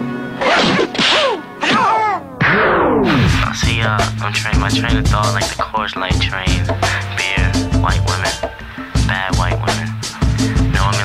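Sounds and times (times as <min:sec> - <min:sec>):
loud whacks falling in pitch: 0:00.4 - 0:03.4.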